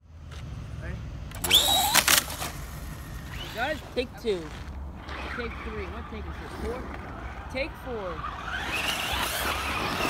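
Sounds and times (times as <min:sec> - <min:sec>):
tyre noise on asphalt: 0:00.1 - 0:10.0
toy truck motor whine: 0:01.4 - 0:04.1, 0:08.2 - 0:10.0.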